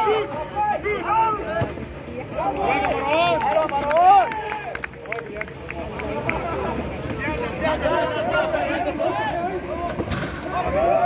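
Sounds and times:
man shouting: 0:00.0 - 0:01.6.

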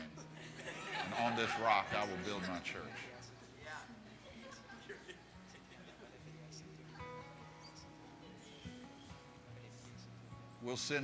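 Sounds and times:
faint murmured voices: 0:01.9 - 0:10.6.

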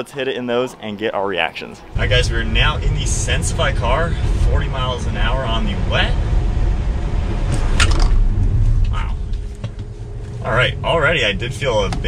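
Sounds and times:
car road and tyre rumble: 0:01.8 - 0:12.0.

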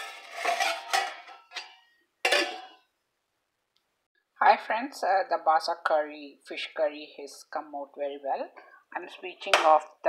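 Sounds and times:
metal lid scraping on pot: 0:00.0 - 0:02.9.

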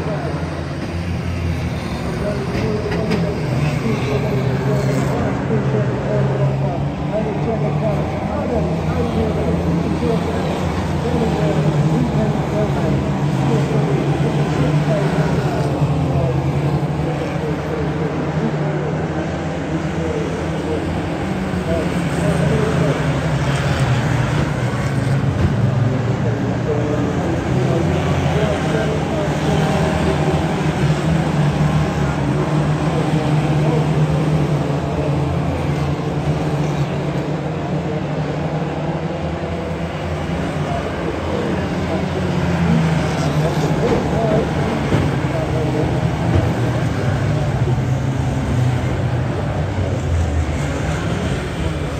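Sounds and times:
racing car engines droning: 0:00.0 - 0:51.9.

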